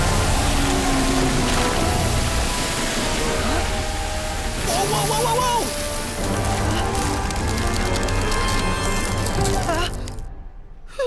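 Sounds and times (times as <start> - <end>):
cartoon goo spraying gush: 0.0 - 10.1.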